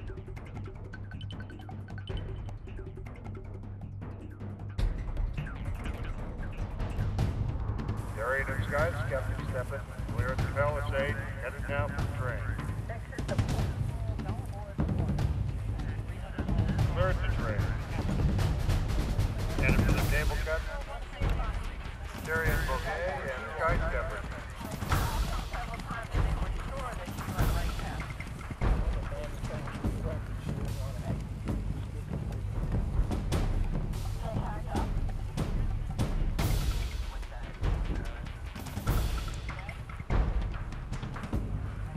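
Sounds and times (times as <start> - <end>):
background music: 0.0 - 41.9
indistinct voices: 8.0 - 40.5.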